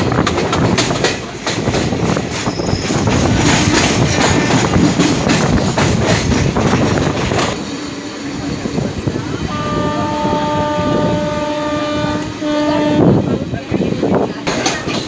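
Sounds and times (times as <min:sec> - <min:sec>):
train wheels clattering over rails: 0:00.0 - 0:09.5, 0:13.6 - 0:15.0
long train horn: 0:09.4 - 0:13.4.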